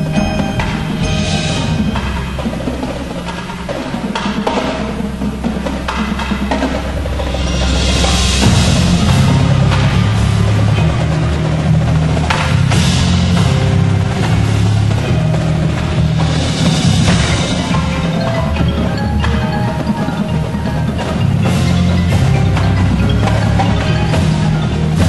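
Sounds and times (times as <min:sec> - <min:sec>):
drums: 0:00.0 - 0:25.0
steady low notes: 0:00.0 - 0:25.0
wood block: 0:00.0 - 0:25.0.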